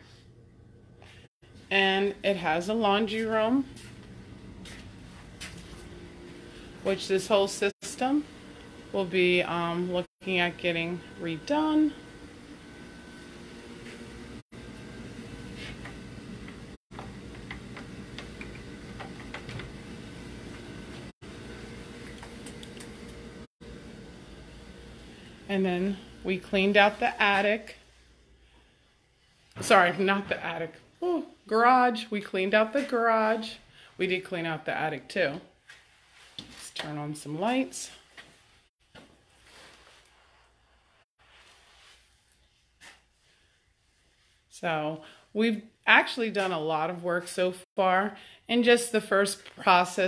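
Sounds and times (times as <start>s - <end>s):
low machine hum: 0.2s - 29.0s.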